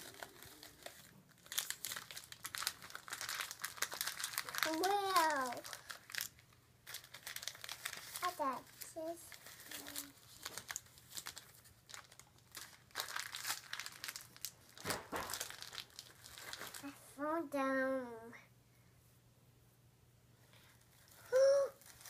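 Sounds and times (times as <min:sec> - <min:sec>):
plastic candy wrappers crinkling: 0:00.0 - 0:17.0, 0:20.9 - 0:22.0
small child's voice: 0:04.5 - 0:05.9, 0:08.1 - 0:10.2, 0:16.8 - 0:18.5, 0:21.2 - 0:21.9.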